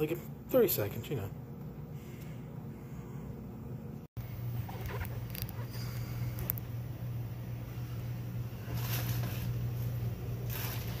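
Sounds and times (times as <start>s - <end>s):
steady low hum: 0.0s - 11.0s
plastic bag rustling: 8.6s - 11.0s.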